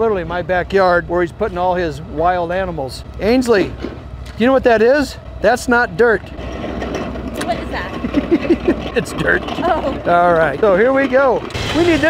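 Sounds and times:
laughter: 8.0 - 9.4.

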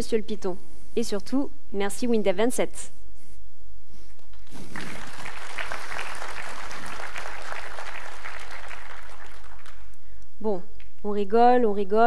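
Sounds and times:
audience applauding: 4.5 - 10.0.

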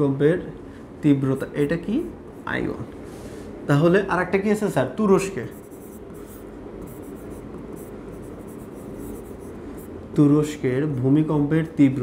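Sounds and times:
low room hum: 0.0 - 12.0
pen scratching on a board: 5.5 - 9.9.

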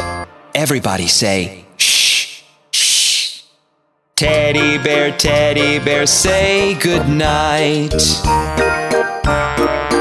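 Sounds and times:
person hushing: 1.8 - 3.6.

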